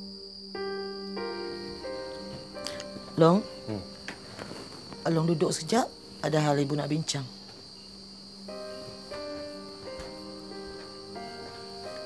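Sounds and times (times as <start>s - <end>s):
crickets chirping: 0.0s - 12.0s
sustained music notes: 0.1s - 7.0s, 8.4s - 12.0s.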